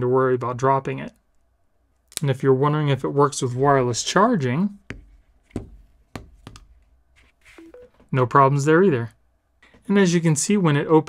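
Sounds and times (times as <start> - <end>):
phone knocking on charging pad: 4.9 - 6.8.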